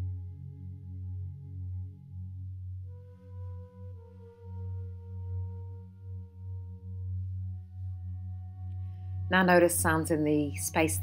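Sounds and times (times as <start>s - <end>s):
low wavering drone: 0.0s - 11.0s.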